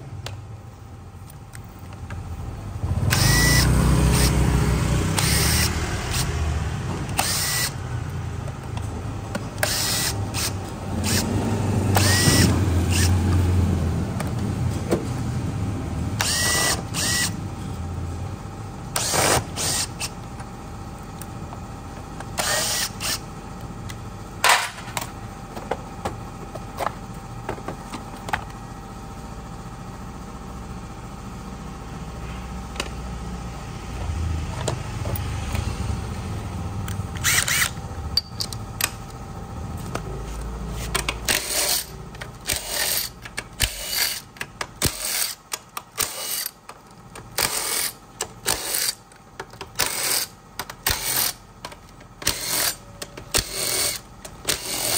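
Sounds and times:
cordless drill whirring: 0:03.0 - 0:04.4, 0:05.1 - 0:06.4, 0:07.1 - 0:07.8, 0:09.6 - 0:13.3, 0:16.2 - 0:17.4, 0:19.0 - 0:20.2, 0:22.4 - 0:23.2, 0:37.2 - 0:37.8, 0:41.3 - 0:45.4, 0:46.0 - 0:46.6, 0:47.4 - 0:49.0, 0:52.2 - 0:52.8, 0:53.4 - 0:54.9.

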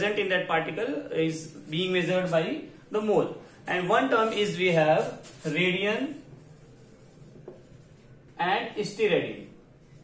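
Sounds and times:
marker scratching on whiteboard: 0:03.8 - 0:08.4.

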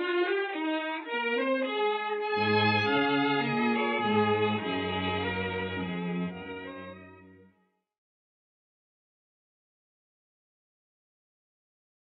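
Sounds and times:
orchestral strings holding chord: 0:02.2 - 0:07.5.

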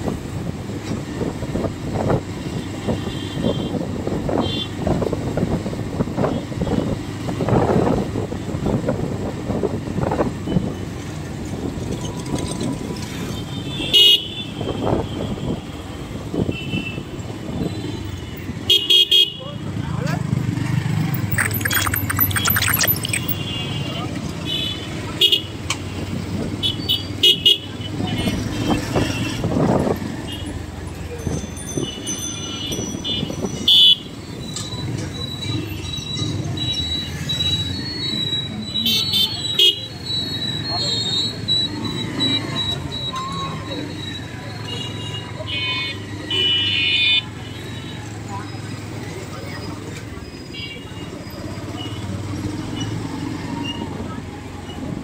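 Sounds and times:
street traffic rumble: 0:00.0 - 0:55.0.

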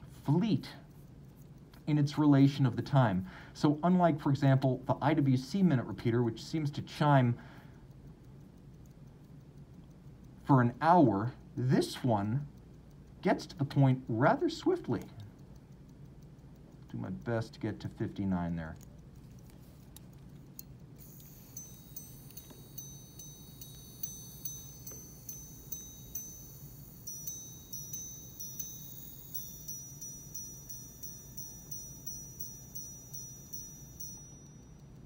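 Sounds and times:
watch chiming on gongs: 0:21.0 - 0:35.0.

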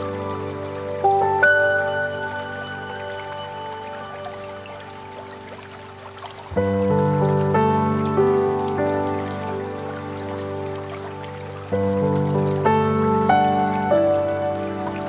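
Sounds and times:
faint running water: 0:00.0 - 0:15.0
slow calm piano music: 0:00.0 - 0:15.0.

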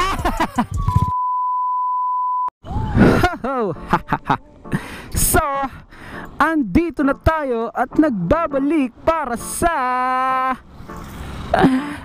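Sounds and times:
censor bleep tone: 0:01.0 - 0:02.5.

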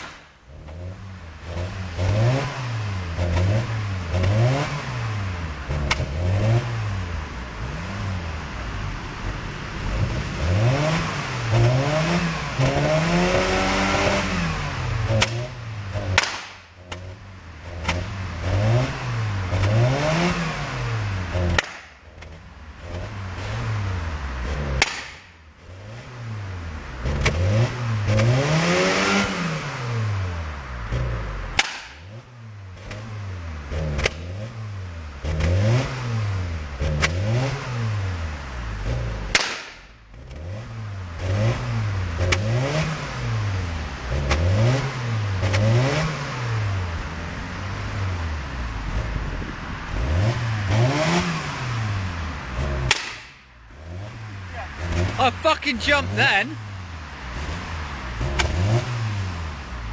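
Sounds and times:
engine revving in blips: 0:00.0 - 0:59.9
exhaust cracks: 0:00.0 - 0:59.9.

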